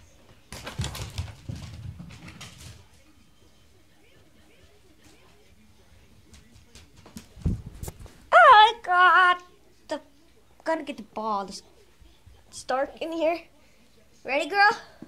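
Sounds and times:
dog paws scrabbling on floor: 0.0s - 3.1s, 4.6s - 8.2s.

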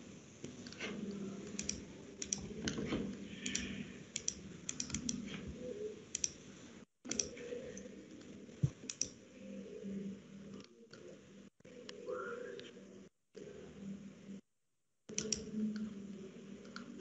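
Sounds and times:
computer mouse and keyboard clicks: 0.4s - 6.4s, 7.1s - 9.2s, 15.1s - 16.0s, 16.6s - 17.0s.

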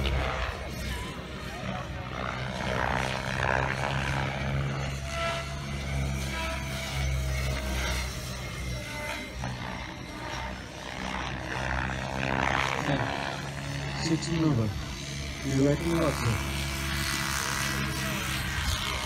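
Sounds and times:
model helicopter rotor and motor: 0.0s - 19.0s.

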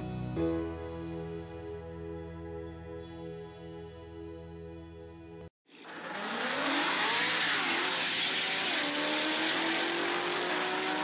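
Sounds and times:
car engine accelerating hard: 5.7s - 11.0s.

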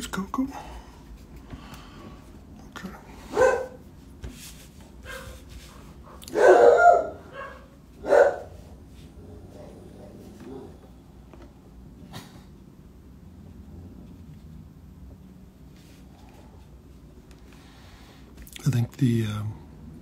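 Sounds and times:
dog barking: 3.3s - 3.8s, 5.1s - 5.4s, 6.2s - 8.6s.

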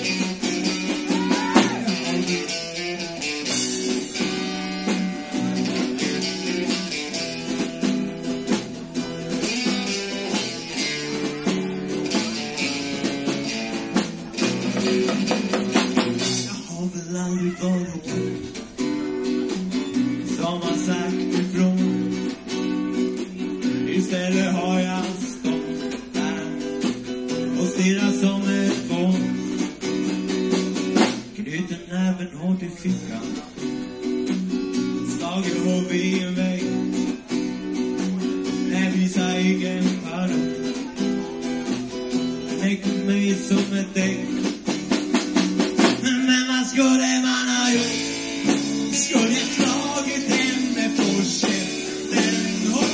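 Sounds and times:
live band playing: 0.0s - 52.9s
strummed guitar: 0.0s - 52.9s.

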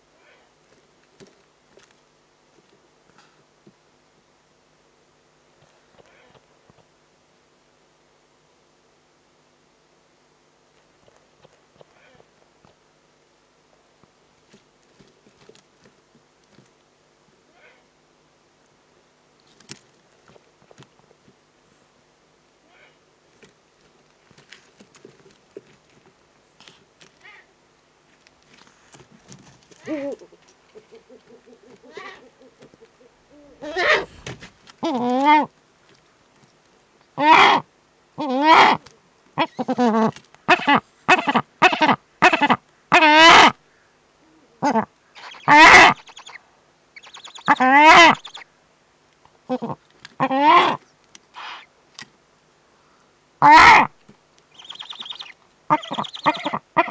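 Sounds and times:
owls rustling in dry leaves: 23.2s - 37.0s, 54.5s - 56.9s
owl call: 29.8s - 34.1s, 37.2s - 43.6s, 44.4s - 46.4s, 47.0s - 48.5s, 49.5s - 50.8s, 51.4s - 51.7s, 53.4s - 56.9s.

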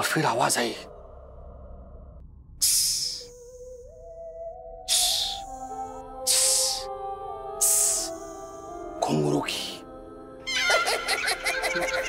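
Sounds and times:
background music: 2.6s - 12.0s.

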